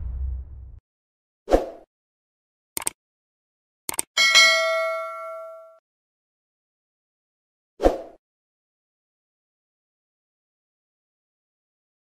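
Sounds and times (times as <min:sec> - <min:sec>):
bright bell ding: 0:04.2 - 0:05.8.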